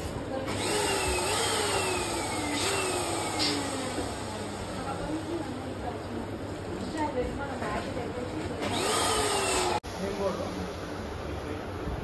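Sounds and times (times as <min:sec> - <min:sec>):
electric balloon pump whining: 0:00.5 - 0:05.3, 0:08.6 - 0:09.8.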